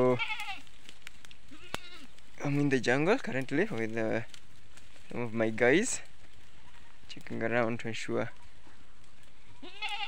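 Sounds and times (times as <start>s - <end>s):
goat bleating: 0.0s - 0.7s, 1.5s - 2.6s, 9.4s - 10.0s.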